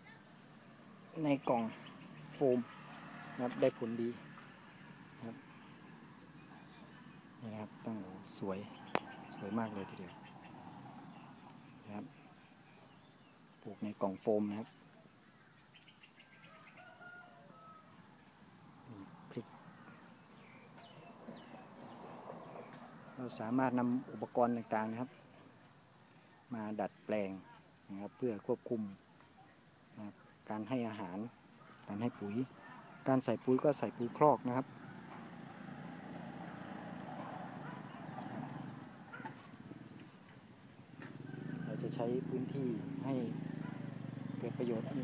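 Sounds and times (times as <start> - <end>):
distant vehicle engine rumble: 0.7 - 14.2, 18.1 - 25.8, 31.6 - 45.0
faint drawn-out bird call: 14.9 - 18.0.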